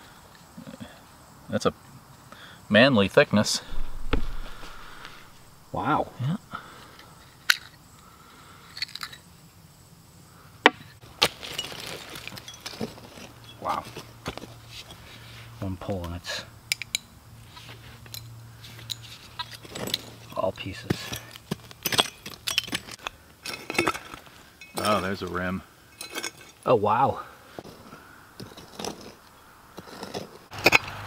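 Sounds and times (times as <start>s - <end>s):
dirt scraping and crumbling: 3.5s - 7.8s, 11.0s - 16.2s, 17.4s - 31.0s
digging tool knocks: 3.7s - 5.2s.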